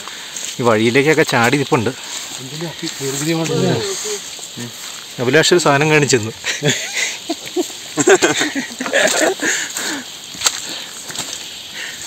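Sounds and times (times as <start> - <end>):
man talking: 0.6 - 6.4.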